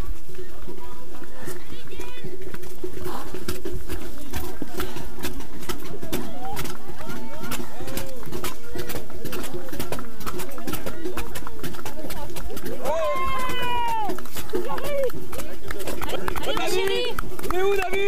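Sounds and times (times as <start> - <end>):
indistinct voices: 0.0 - 18.0.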